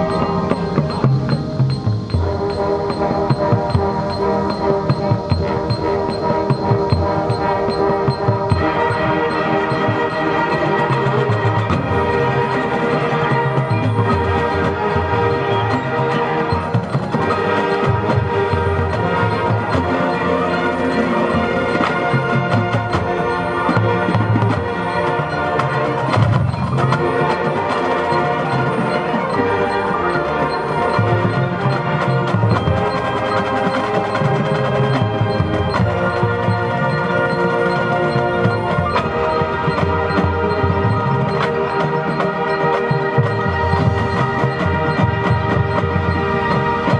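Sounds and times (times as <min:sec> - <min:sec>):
marching band brass chords: 0:00.0 - 0:46.9
marching band percussion: 0:00.0 - 0:46.9.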